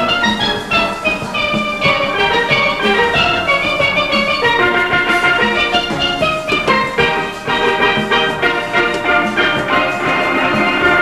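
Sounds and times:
steel pans playing: 0.0 - 11.0.

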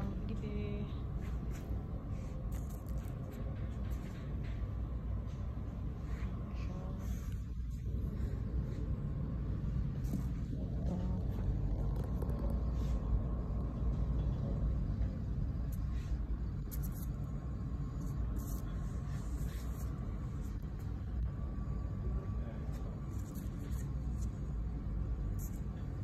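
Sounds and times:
low background rumble: 0.0 - 26.0.

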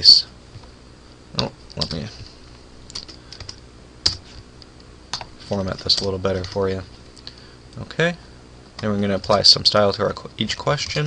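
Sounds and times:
computer keyboard keystrokes: 2.9 - 4.2.

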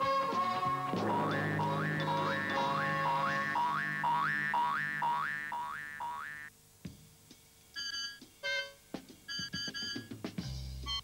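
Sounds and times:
low steady hum: 0.8 - 6.8
cartoon boing pitch glides: 1.0 - 6.5.

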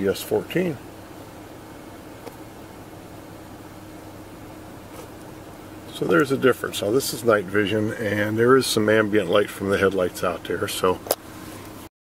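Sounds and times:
vehicle engine idling: 0.0 - 11.9.

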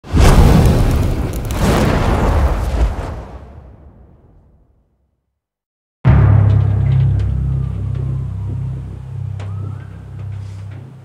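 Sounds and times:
deep cinematic boom: 6.1 - 10.3.

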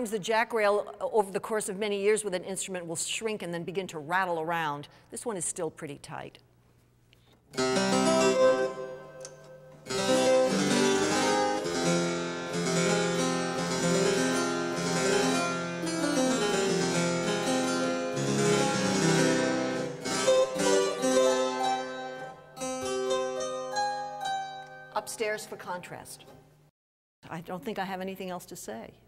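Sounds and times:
harpsichord playing: 7.5 - 25.4.

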